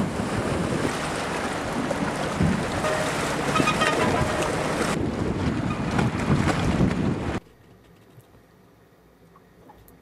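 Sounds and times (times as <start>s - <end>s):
seawater splashing around pilings: 0.0s - 7.4s
wind buffeting microphone: 0.0s - 7.4s.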